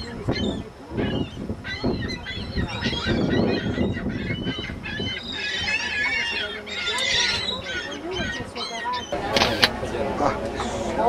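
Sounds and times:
flock of birds calling: 0.0s - 11.0s.

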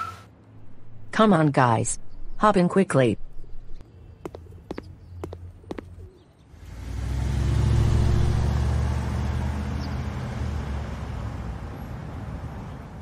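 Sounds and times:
car engine pulling away: 6.6s - 13.0s.

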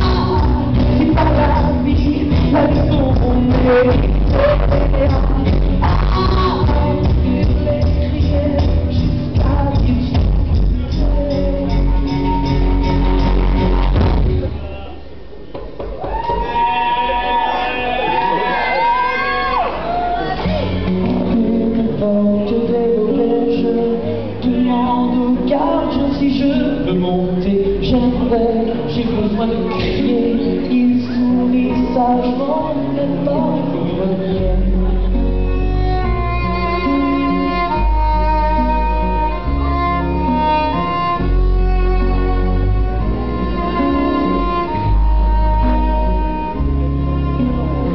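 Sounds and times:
violin melody: 0.0s - 14.8s, 22.6s - 47.9s
sustained low bass notes: 0.0s - 15.5s, 20.5s - 47.9s
acoustic band with guitar and cello: 0.0s - 47.9s
voices in a hall: 0.0s - 47.9s.

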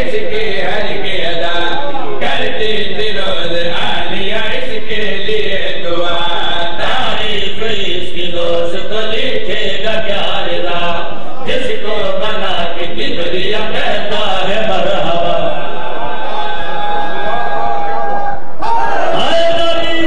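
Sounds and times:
men chanting into a microphone: 0.0s - 17.4s, 18.6s - 20.0s.

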